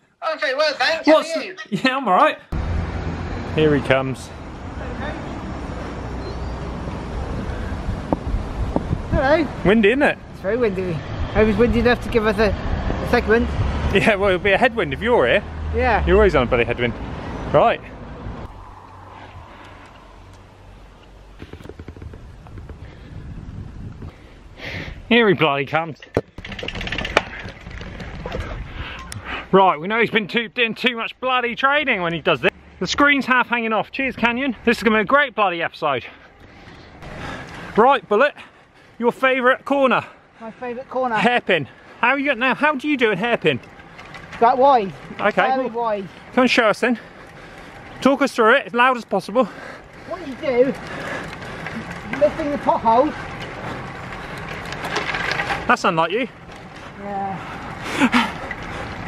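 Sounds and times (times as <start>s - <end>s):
tyres on the road: 0.0s - 59.0s
wind noise: 6.2s - 14.5s, 16.0s - 25.1s
wind on microphone: 7.4s - 9.2s, 18.1s - 21.0s, 21.6s - 24.3s
camera knocks and rustling: 21.3s - 22.8s.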